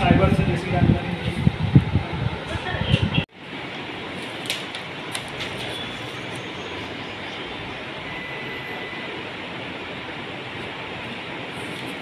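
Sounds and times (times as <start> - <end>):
air cooler fan running: 0.0 - 7.1
paper rustling: 4.2 - 6.2.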